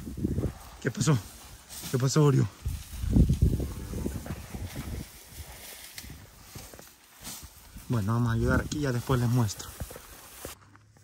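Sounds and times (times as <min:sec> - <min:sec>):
hooves knocking on dry ground: 0:00.0 - 0:11.0.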